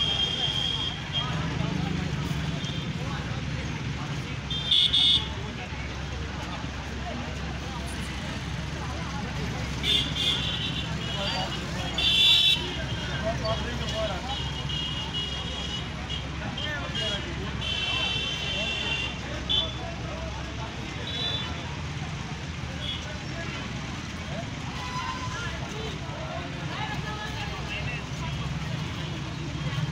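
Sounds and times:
crowd chatter: 0.0 - 29.9
idling engines rumbling: 0.0 - 29.9.

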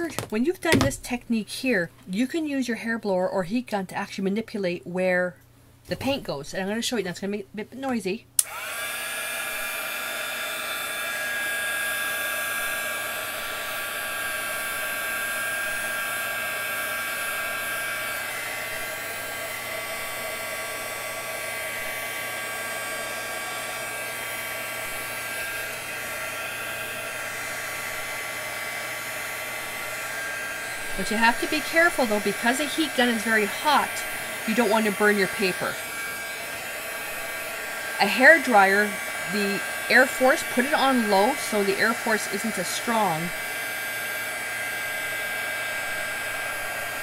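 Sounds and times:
heat gun fan whining: 8.4 - 47.0.

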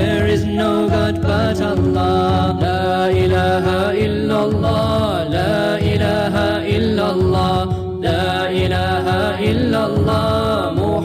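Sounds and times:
person singing long wordless notes: 0.0 - 11.0.

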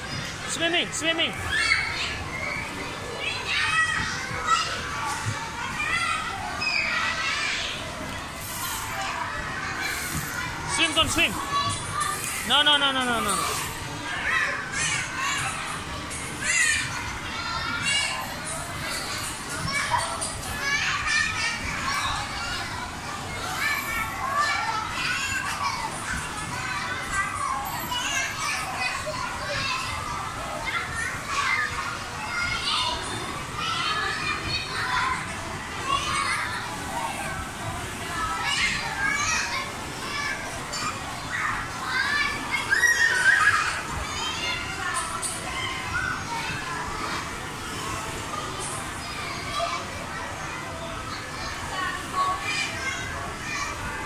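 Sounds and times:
children playing and calling out: 0.0 - 54.0.

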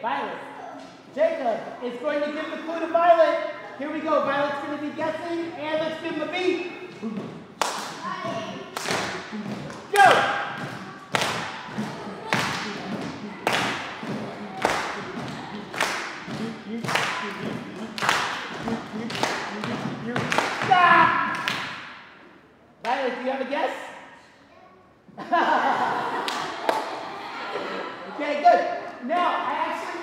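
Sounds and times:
person speaking: 0.0 - 21.7
voices: 0.0 - 21.8
group drumming steady beat: 6.6 - 22.0.

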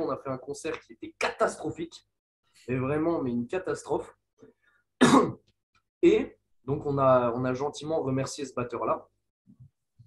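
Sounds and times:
man clearing his throat: 5.0 - 5.5.

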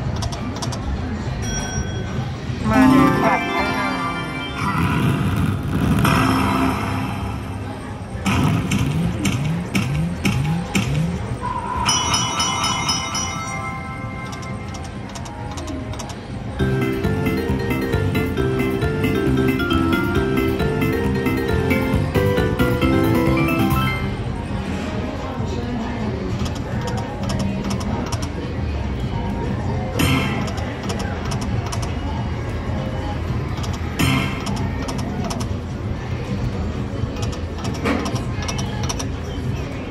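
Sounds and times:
people chattering: 0.0 - 39.9
slot machine spin sounds: 2.5 - 8.0, 16.6 - 24.4
machine music: 2.6 - 7.8, 16.6 - 24.4
slot machine rumbling whoosh: 2.6 - 9.1.

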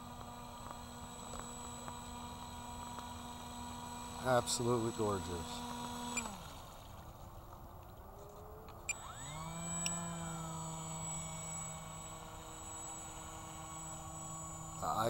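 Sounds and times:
electric motor whine: 0.0 - 7.4, 8.0 - 15.0.

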